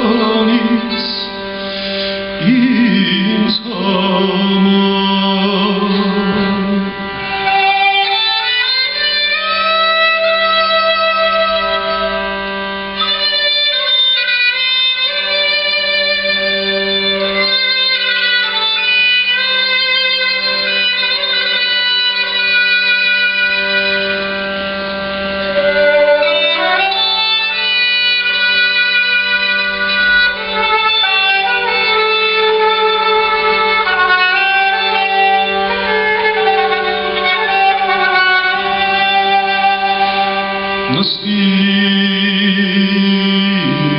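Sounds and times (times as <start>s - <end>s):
bowed string melody: 0.0s - 43.9s.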